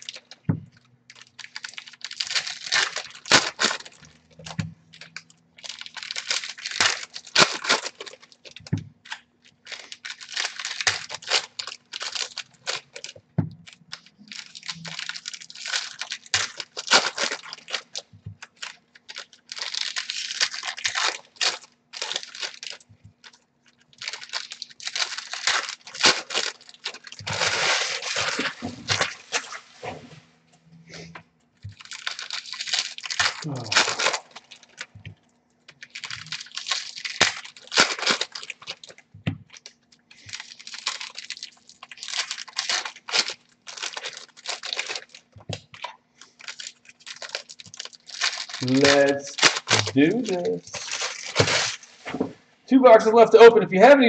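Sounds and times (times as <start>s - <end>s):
wrappers tearing and crinkling: 0.0s - 30.0s, 30.9s - 53.4s.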